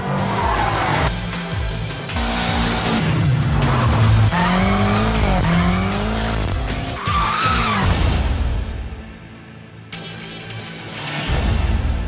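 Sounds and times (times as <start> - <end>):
car engine revving: 2.0 - 8.5.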